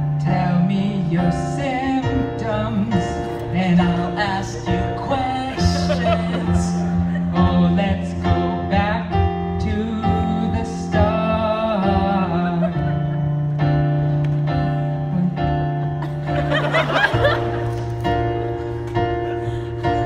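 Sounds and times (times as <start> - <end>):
keyboard playing: 0.0 - 20.0
men singing: 0.4 - 12.4.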